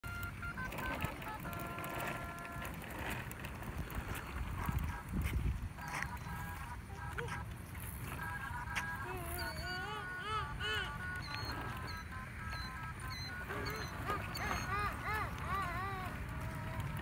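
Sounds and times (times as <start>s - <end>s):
plastic wheels rolling on concrete: 0.0s - 17.0s.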